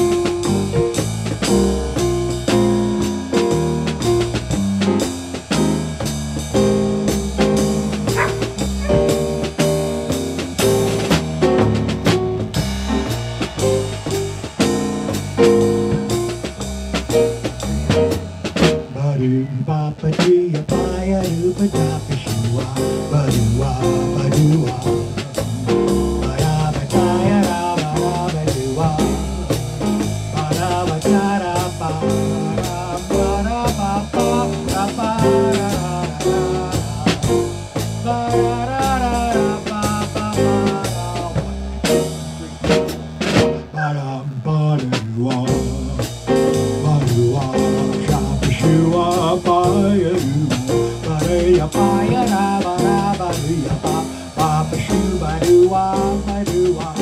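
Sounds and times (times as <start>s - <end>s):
digital piano: 0.0s - 19.3s, 20.6s - 43.8s, 45.4s - 57.0s
drum kit steady beat: 0.0s - 43.8s, 44.6s - 57.0s
electric bass: 0.0s - 57.0s.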